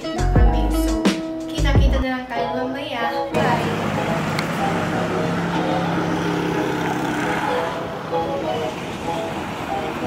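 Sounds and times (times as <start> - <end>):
background music: 0.0 - 10.0
vehicles passing: 3.3 - 10.0
low engine hum: 3.4 - 9.7.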